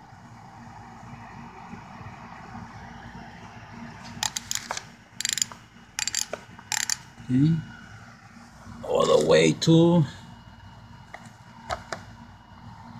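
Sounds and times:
low steady hum: 0:00.0 - 0:12.9
wrenches clinking and rattling: 0:04.2 - 0:07.0.

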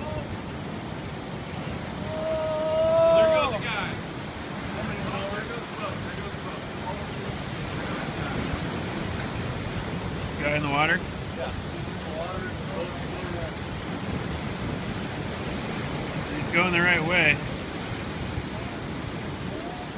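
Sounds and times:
surf breaking over rocks: 0:00.0 - 0:19.9
wind buffeting microphone: 0:00.0 - 0:19.9
person crying out: 0:02.0 - 0:03.4.

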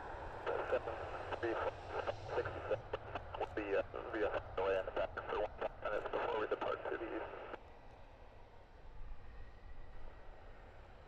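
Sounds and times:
jet engines rumbling: 0:00.0 - 0:07.6.

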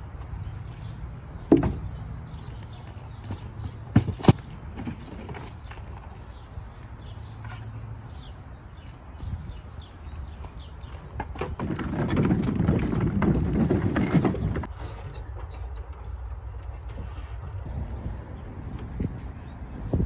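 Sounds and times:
sharp knocks: 0:01.5 - 0:01.9.

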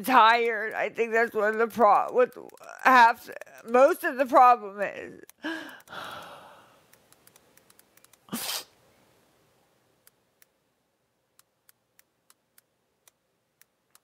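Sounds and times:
faint ticks: 0:00.3 - 0:04.2, 0:11.4 - 0:14.0
breathing: 0:05.4 - 0:06.9.

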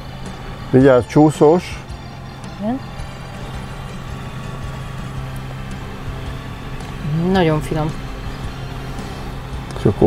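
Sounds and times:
faint high whine: 0:00.0 - 0:10.0
machine humming: 0:00.0 - 0:10.0.

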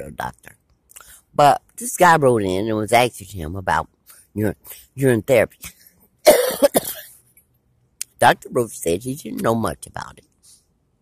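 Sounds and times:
person coughing: 0:06.3 - 0:07.1.

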